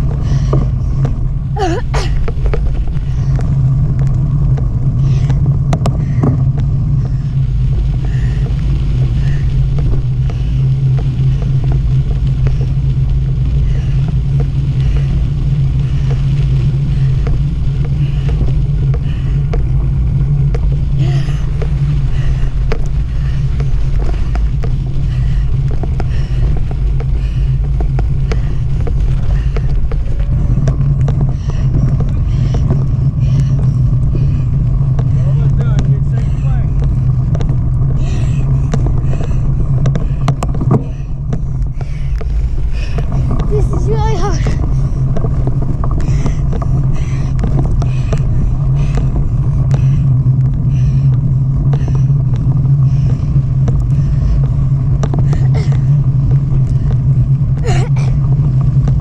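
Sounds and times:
bike tyres rolling over dirt: 0:00.0 - 0:59.0
wind buffeting microphone: 0:00.0 - 0:59.0.

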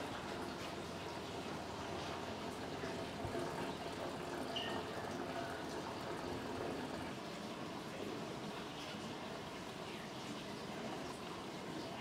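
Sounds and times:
water trickling and bubbling: 0:00.0 - 0:12.0.

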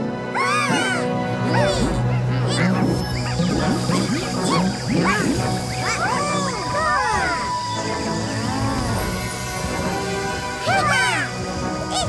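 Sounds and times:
background music: 0:00.0 - 0:12.0
cartoon characters squawky chatter: 0:00.4 - 0:07.6.

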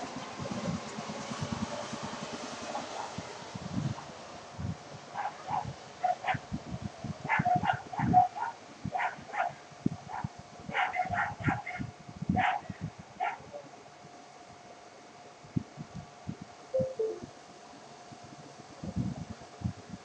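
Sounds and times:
faint steady tone: 0:16.8 - 0:17.3.

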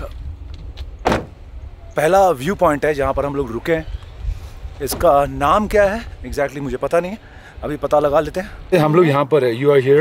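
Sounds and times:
car door shutting: 0:00.7 - 0:01.4.

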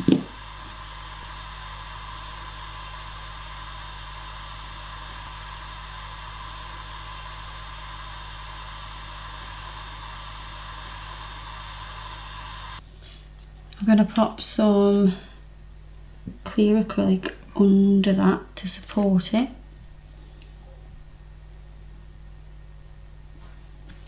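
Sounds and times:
electrical hum with hiss: 0:00.0 - 0:24.0.

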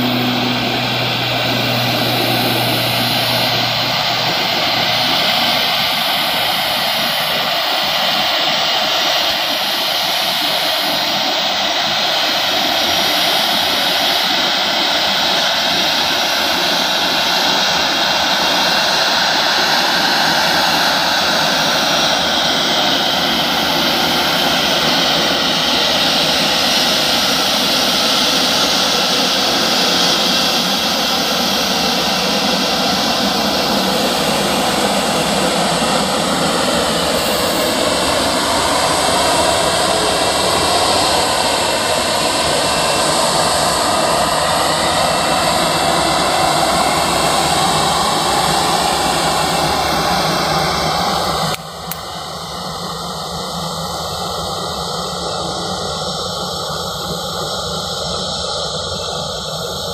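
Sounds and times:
jet engine roar with whine: 0:00.0 - 0:59.9.

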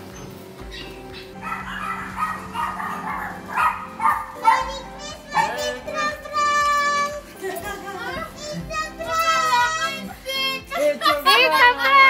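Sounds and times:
background music: 0:00.0 - 0:12.0
children shrieking and shouting: 0:00.7 - 0:12.0.

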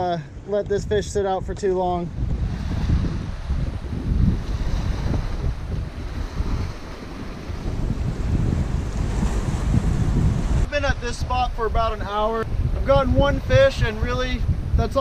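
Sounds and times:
wind buffeting microphone: 0:00.0 - 0:15.0
ocean surf washing around rocks: 0:02.2 - 0:15.0.

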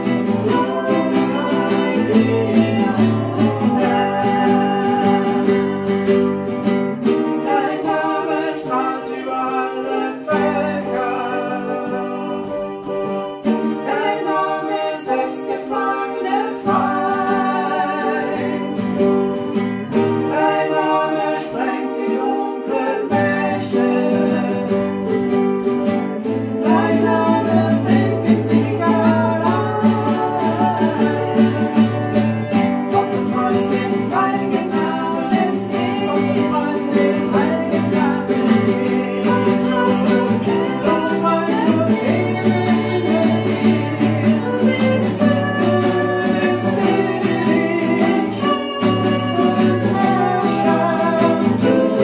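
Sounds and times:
person singing: 0:00.0 - 0:25.5, 0:26.2 - 0:52.0
acoustic guitar playing: 0:00.0 - 0:52.0.

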